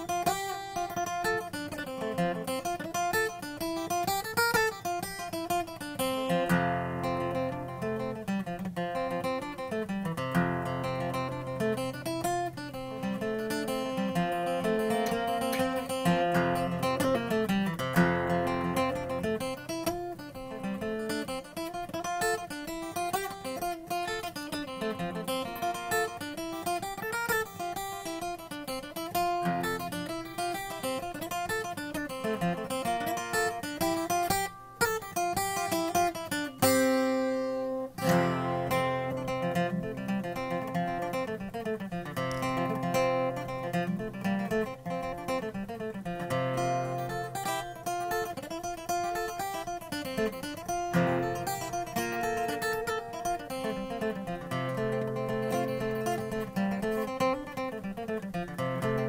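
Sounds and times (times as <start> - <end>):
banjo picking a jig melody: 0.0 - 59.0
strummed acoustic guitar: 0.0 - 59.0.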